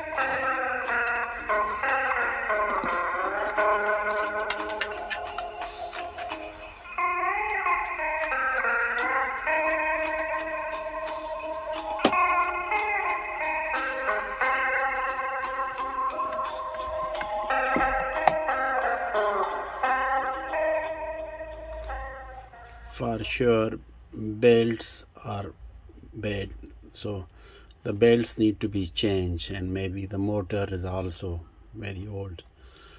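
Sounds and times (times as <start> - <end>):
wavering cassette music on small speaker: 0.0 - 23.4.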